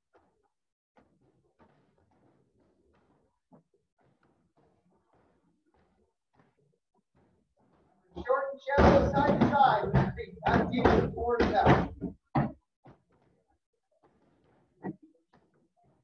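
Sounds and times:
voices: 0:08.2 - 0:12.0
kicks thudding on punching bags: 0:08.7 - 0:12.6.

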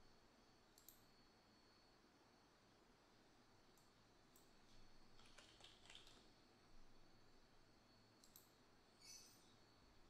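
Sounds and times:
computer keyboard typing: 0:05.2 - 0:06.2.

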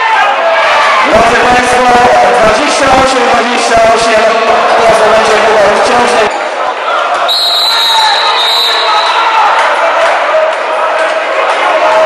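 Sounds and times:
crowd and hall noise: 0:00.0 - 0:12.0
long high whistle: 0:07.3 - 0:09.3.

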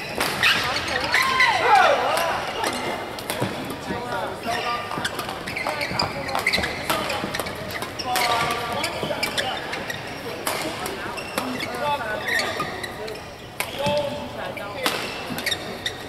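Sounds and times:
shoes squeaking on court floor: 0:00.0 - 0:16.0
voices in hall: 0:00.0 - 0:16.0
rackets striking shuttlecock: 0:02.1 - 0:04.0, 0:04.9 - 0:09.4, 0:14.8 - 0:15.7.

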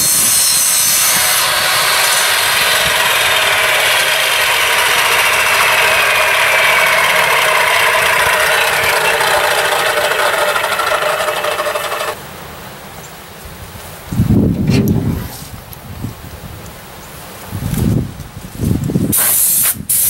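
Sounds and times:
miter saw motor winding down: 0:00.0 - 0:12.2.

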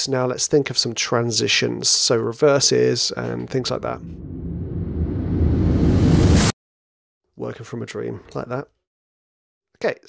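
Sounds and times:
grainy rumbling riser: 0:03.3 - 0:06.5.

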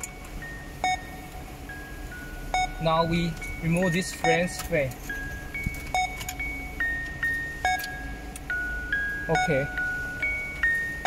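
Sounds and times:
bell-like melody: 0:00.0 - 0:11.0.

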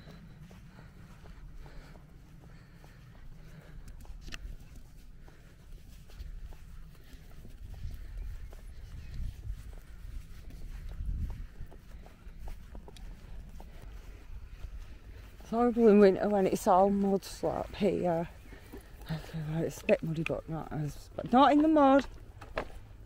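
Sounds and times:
wind rumbling on microphone: 0:00.0 - 0:19.3
footsteps in grass: 0:00.0 - 0:23.0.

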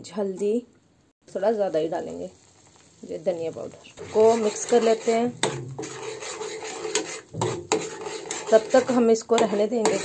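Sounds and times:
ladle scraping steel pan: 0:04.0 - 0:10.0.

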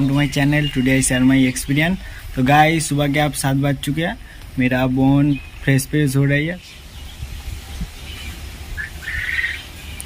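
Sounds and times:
small bird chirping: 0:04.2 - 0:10.0.

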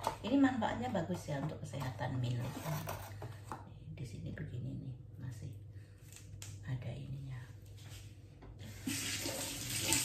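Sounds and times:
tap water running into sink: 0:08.7 - 0:10.0.

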